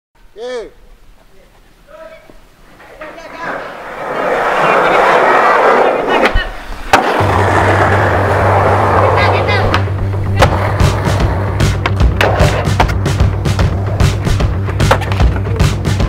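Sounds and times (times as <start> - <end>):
skateboard wheels rolling on pavement: 0.8 - 16.0
skateboard clacking: 2.7 - 16.0
skateboard landing clack: 2.9 - 16.0
music with low bass: 7.3 - 16.0.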